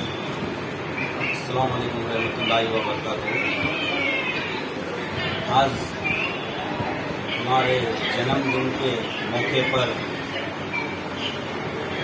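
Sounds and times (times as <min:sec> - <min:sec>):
high-pitched wavering cry: 0:02.2 - 0:05.4.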